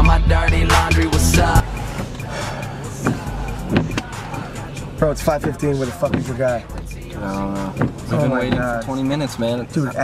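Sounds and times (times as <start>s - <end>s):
car engine humming: 0.0s - 10.0s
music playing low: 0.0s - 10.0s.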